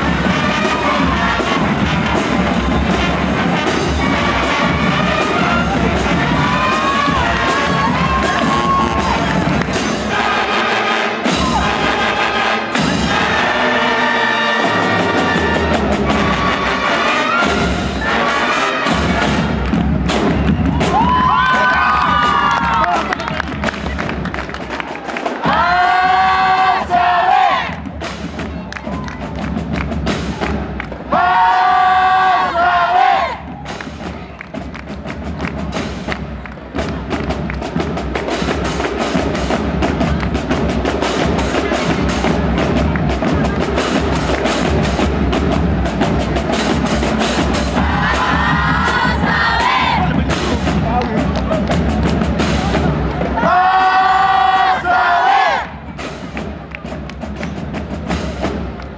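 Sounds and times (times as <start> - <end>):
brass band playing held chords: 0.0 - 28.6, 29.6 - 58.9
audience cheering and applauding: 4.0 - 10.0, 19.2 - 37.9.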